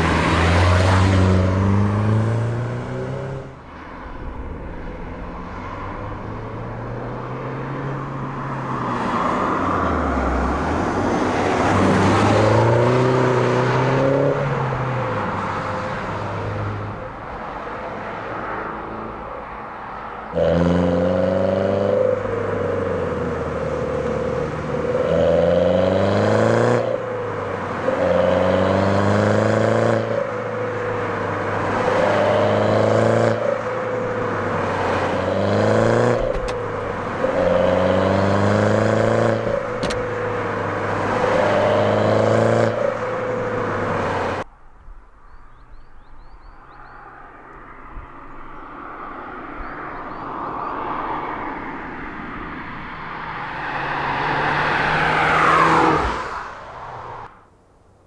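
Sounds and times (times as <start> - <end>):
car engine revving: 0.0 - 15.7, 20.3 - 44.5
car approaching: 0.0 - 58.0.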